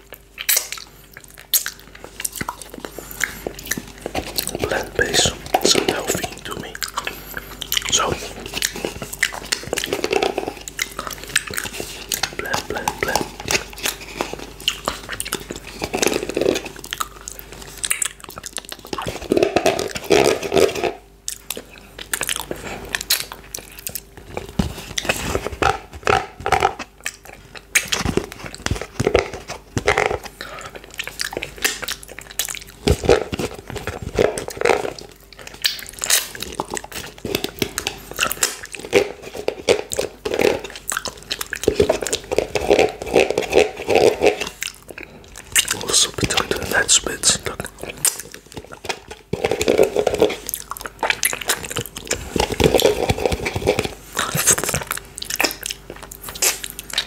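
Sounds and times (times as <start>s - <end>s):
lip smacks: 0.1s - 20.3s, 44.3s - 49.5s, 50.4s - 57.0s.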